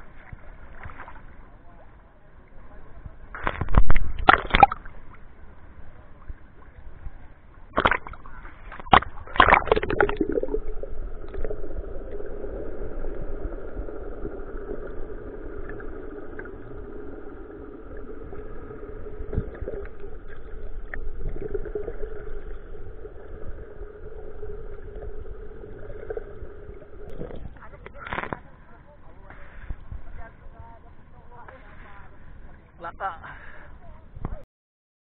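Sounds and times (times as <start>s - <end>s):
underwater hum: 0.0s - 33.9s
water noise: 0.0s - 34.4s
splash: 3.3s - 5.0s, 7.7s - 12.1s.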